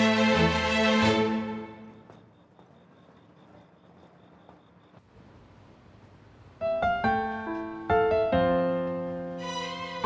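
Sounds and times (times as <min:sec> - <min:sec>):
faint low hum: 0:01.7 - 0:07.6
insect chirping: 0:01.8 - 0:05.1.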